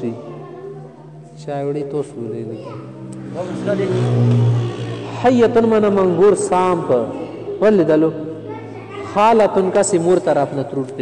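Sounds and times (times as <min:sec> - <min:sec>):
man speaking: 0:00.0 - 0:00.3, 0:03.3 - 0:04.3, 0:05.2 - 0:08.3, 0:09.1 - 0:11.0.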